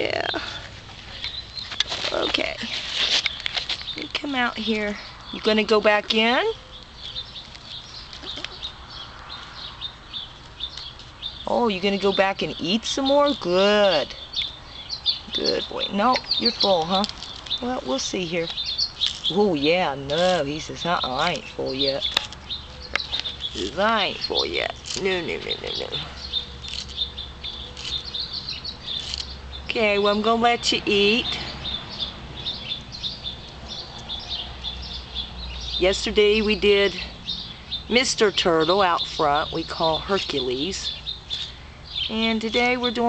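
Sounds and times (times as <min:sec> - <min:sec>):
small birds chirping: 0:00.0 - 0:43.0.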